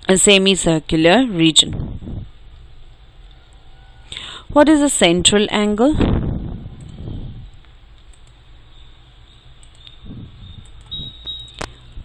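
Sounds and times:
low hum: 0.8s - 12.0s.

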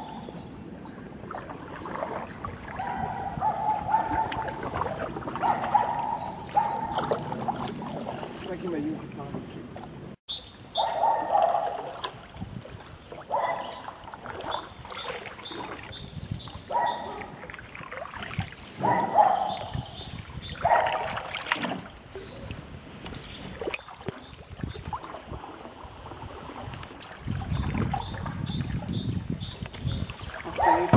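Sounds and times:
canoe paddle strokes in water: 1.2s - 10.0s, 11.6s - 30.9s.

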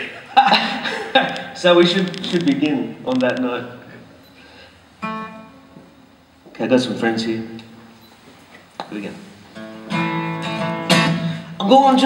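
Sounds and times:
acoustic guitar note ringing: 4.2s - 5.9s.

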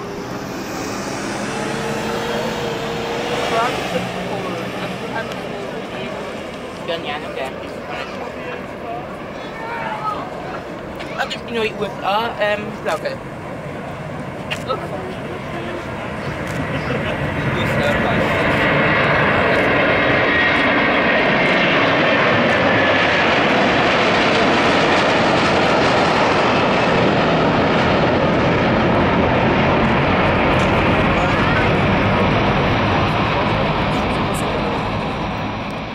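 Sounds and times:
jet engine roar: 0.0s - 35.9s.

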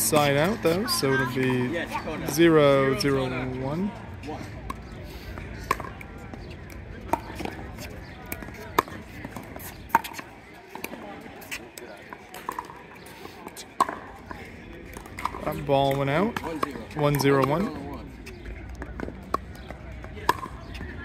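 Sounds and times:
paddles hitting plastic ball: 18.6s - 21.0s.

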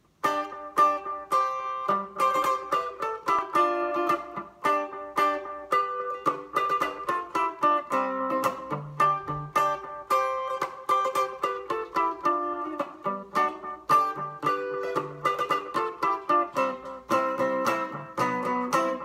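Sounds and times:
clean electric guitar picking: 0.0s - 19.0s.

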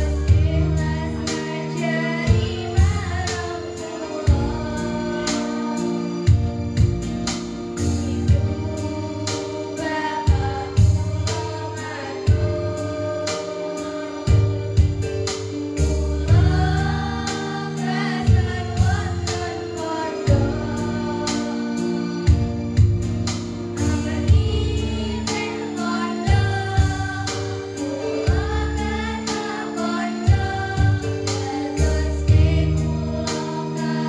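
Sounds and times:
girls singing together: 0.0s - 6.2s, 8.0s - 14.9s, 15.8s - 22.4s, 23.8s - 34.0s
instrumental backing with bass: 0.0s - 34.0s.

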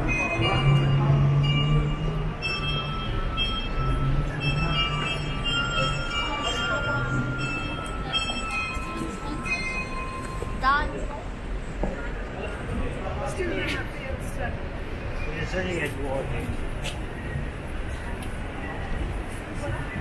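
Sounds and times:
high steady tones: 0.0s - 11.5s
city street traffic: 0.0s - 20.0s.

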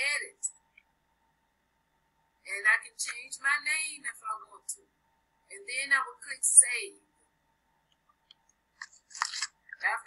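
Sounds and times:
woman speaking: 0.0s - 0.5s, 2.5s - 4.9s, 5.5s - 7.0s, 9.8s - 10.0s.

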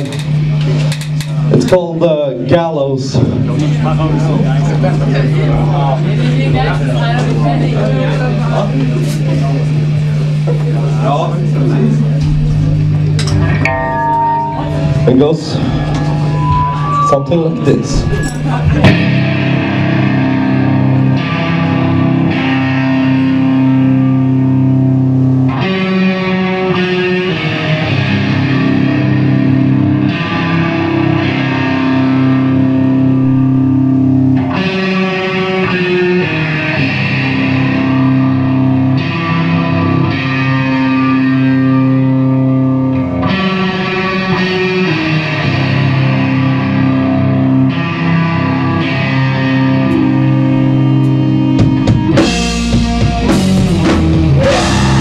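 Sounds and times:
distorted electric guitar chords: 0.0s - 55.0s.

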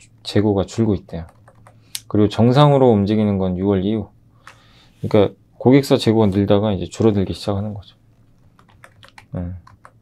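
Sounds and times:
keyboard keys clicking: 1.3s - 1.8s, 8.5s - 10.0s.

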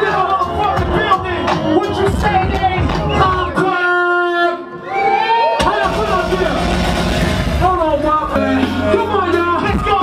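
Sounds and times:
bass beat: 0.0s - 3.6s, 5.6s - 10.0s
crowd noise: 0.0s - 10.0s.

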